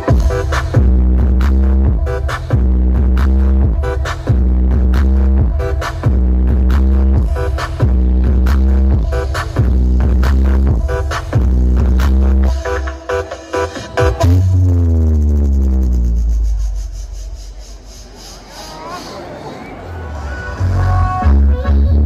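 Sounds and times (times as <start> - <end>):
deep bass notes: 0.0 - 12.6, 14.1 - 18.0
loud electronic dance music: 0.0 - 19.2, 20.1 - 22.0.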